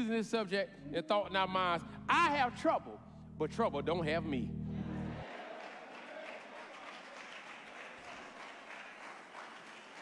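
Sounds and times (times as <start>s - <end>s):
congregation clapping: 5.2s - 10.0s.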